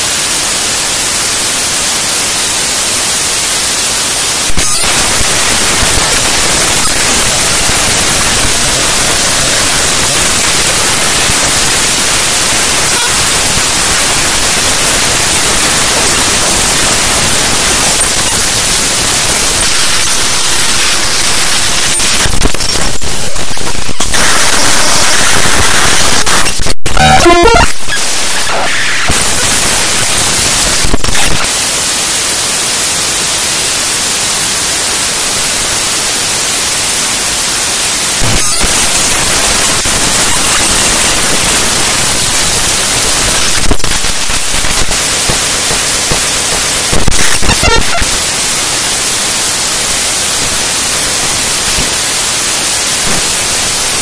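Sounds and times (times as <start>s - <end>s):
glitchy stutter: 0.0s - 34.2s, 34.8s - 54.0s
harsh static noise: 0.0s - 54.0s.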